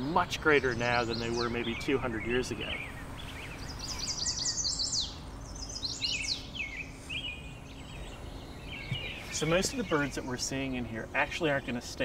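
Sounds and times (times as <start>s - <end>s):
songbirds singing: 0.0s - 12.0s.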